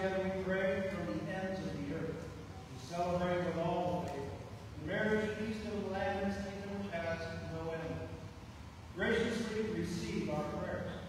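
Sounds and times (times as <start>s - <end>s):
man speaking: 0.0s - 8.3s, 8.9s - 11.0s.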